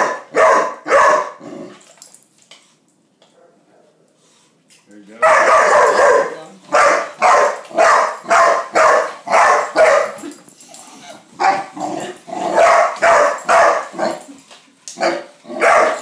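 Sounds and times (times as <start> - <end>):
young dog barking: 0.0 - 1.4, 5.2 - 10.2, 11.4 - 11.7, 12.5 - 14.2, 15.0 - 16.0.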